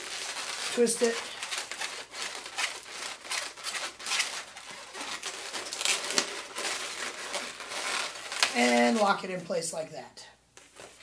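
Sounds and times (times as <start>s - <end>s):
balloons being twisted: 0.0s - 9.2s.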